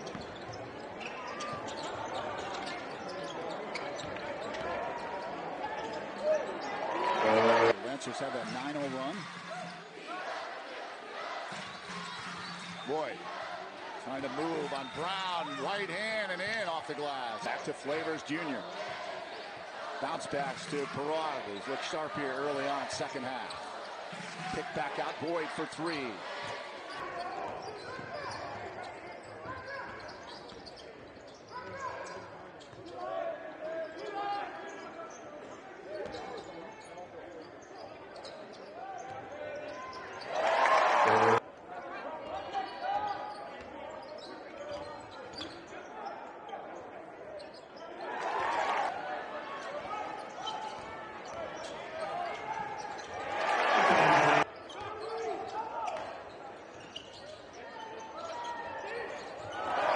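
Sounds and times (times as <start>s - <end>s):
crowd cheering: 6.8s - 7.8s, 40.2s - 41.4s, 53.2s - 54.5s.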